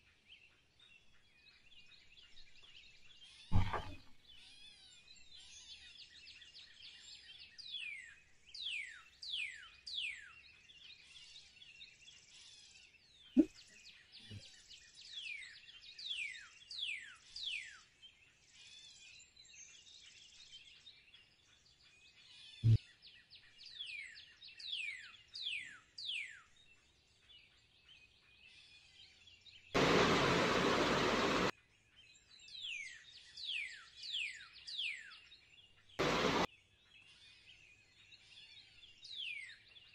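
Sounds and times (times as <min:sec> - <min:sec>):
birds chirping: 0:01.7 - 0:04.1, 0:29.8 - 0:31.5, 0:36.0 - 0:36.5
loud steady hiss: 0:29.8 - 0:31.5, 0:36.0 - 0:36.5.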